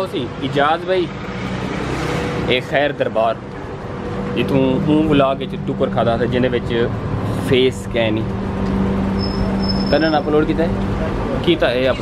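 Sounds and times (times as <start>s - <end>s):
traffic engine hum: 0.0s - 12.0s
man talking: 2.5s - 3.4s, 4.3s - 8.3s, 9.9s - 12.0s.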